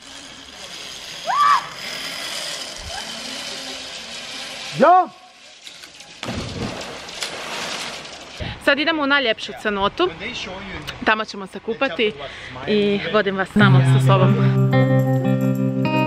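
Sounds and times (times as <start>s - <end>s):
zip-line trolley whirring: 0.0s - 9.2s
person whooping: 1.2s - 1.8s
water sloshing: 5.8s - 8.7s.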